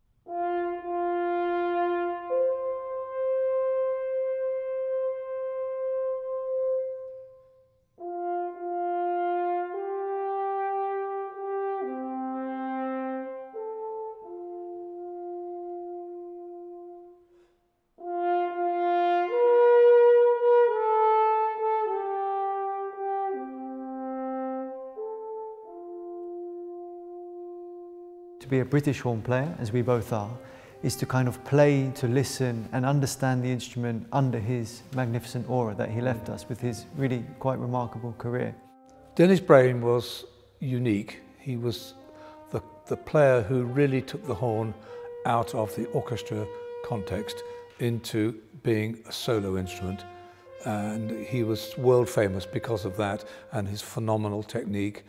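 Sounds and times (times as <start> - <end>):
solo french horn melody: 0.0 - 55.0.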